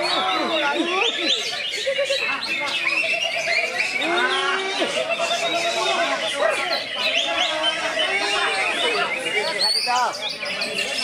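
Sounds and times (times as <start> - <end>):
songbirds singing: 0.0 - 11.0
steady warbling bird trill: 0.0 - 11.0.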